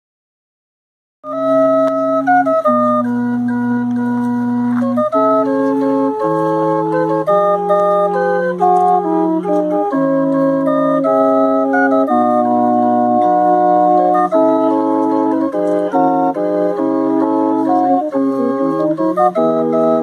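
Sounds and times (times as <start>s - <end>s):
barrel organ playing slow tune: 1.3s - 20.0s.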